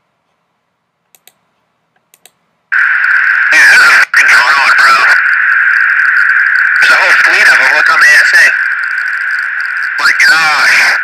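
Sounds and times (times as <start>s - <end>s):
faint clicks: 1.1s - 2.4s
radio hiss: 2.7s - 11.0s
tinny voices over radio: 2.8s - 11.0s.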